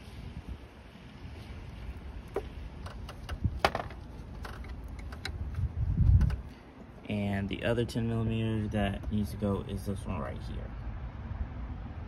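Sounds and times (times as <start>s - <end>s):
wind rumble on microphone: 0.0s - 6.7s.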